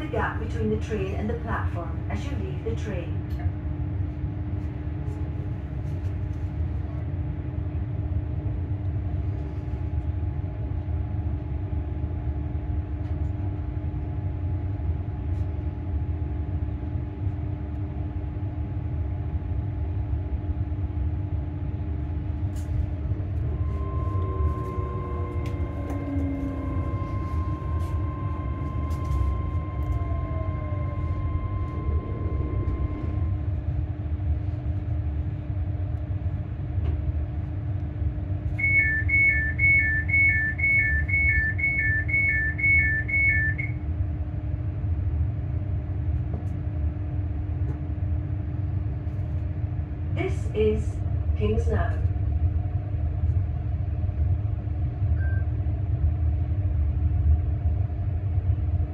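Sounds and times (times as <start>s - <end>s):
train rumbling: 0.0s - 58.9s
train whine falling in pitch: 22.6s - 35.1s, 38.2s - 44.0s
door warning beeping: 23.4s - 33.5s, 38.6s - 43.8s.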